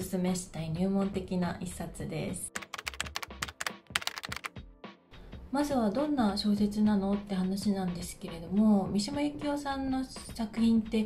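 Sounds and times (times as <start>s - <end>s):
keyboard typing clicks: 2.6s - 4.5s
faint music: 5.1s - 11.0s.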